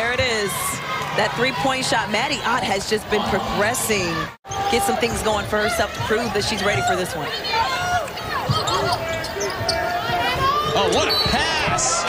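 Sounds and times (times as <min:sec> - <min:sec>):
shoes squeaking: 0:03.9 - 0:12.0.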